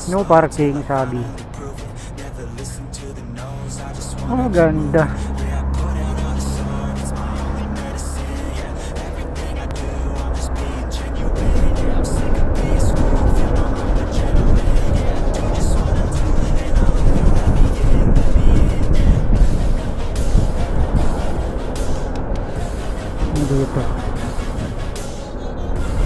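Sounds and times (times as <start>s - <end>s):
background music: 0.0s - 26.0s
motorcycle wind and road noise: 10.7s - 24.9s.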